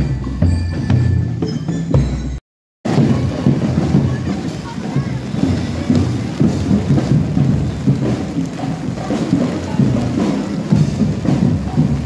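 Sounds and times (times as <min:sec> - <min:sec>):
heavy rain on street: 0:02.9 - 0:12.0.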